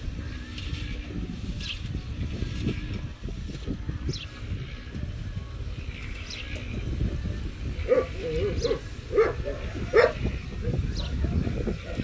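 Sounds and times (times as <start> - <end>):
dog yelping: 7.9 - 10.2.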